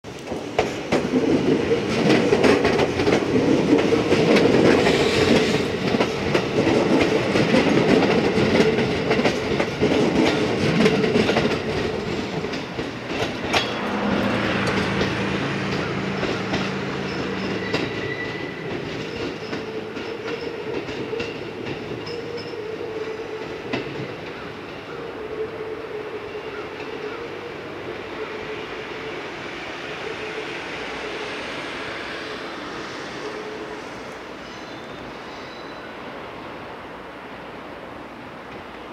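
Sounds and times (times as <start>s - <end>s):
electric train passing: 0.1s - 38.9s
wheels clattering over rail joints: 0.3s - 22.7s.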